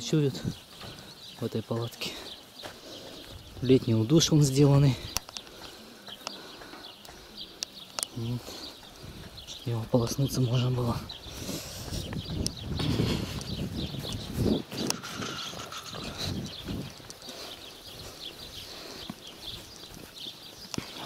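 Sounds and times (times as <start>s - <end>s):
faint birds chirping: 0.0s - 21.0s
footsteps through long grass: 11.0s - 21.0s.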